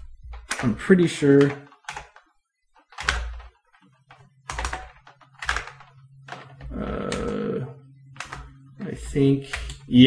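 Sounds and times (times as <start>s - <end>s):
computer keyboard typing: 0.0s - 9.9s.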